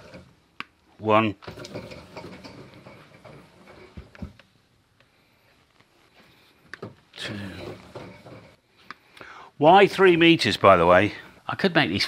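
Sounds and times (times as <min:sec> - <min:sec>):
wire handling noise: 0:01.4 - 0:09.2.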